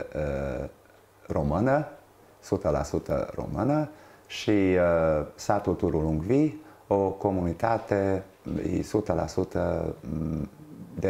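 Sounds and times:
man speaking in a low voice: 0:00.0 - 0:11.0.

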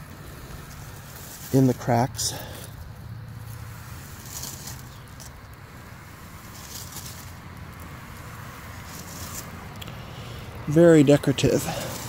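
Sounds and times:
low steady rumble: 0:00.0 - 0:12.0.

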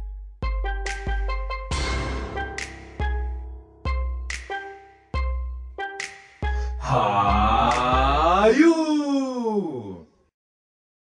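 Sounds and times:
voice crying out: 0:06.8 - 0:10.1.

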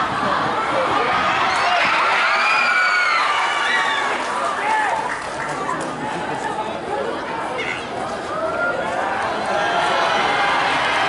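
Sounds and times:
crowd chatter: 0:00.0 - 0:11.0
crowd shouting and cheering: 0:00.0 - 0:11.0.

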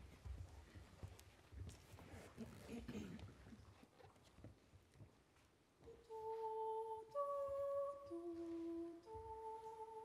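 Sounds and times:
shuffling and footsteps: 0:03.8 - 0:10.0.

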